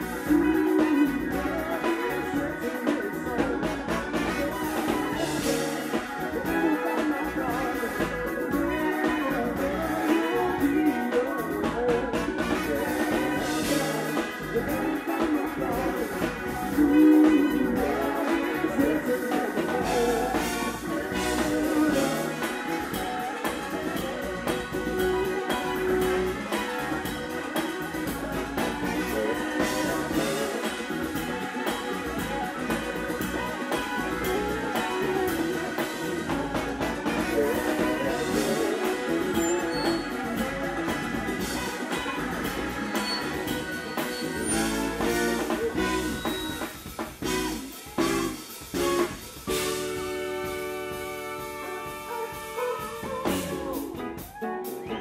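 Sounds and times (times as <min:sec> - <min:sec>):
band ensemble hits: 0:00.0 - 0:55.0
funk band playing: 0:00.0 - 0:55.0
horn section: 0:00.0 - 0:55.0.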